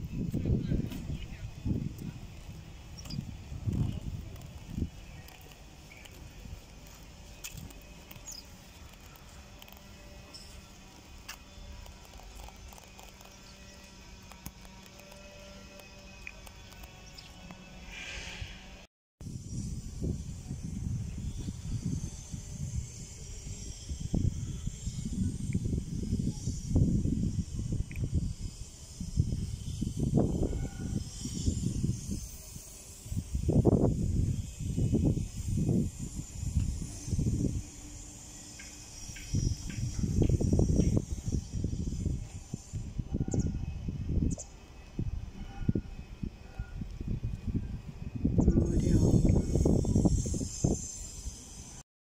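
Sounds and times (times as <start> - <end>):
wind buffeting microphone: 0.0 - 17.8, 19.2 - 51.8.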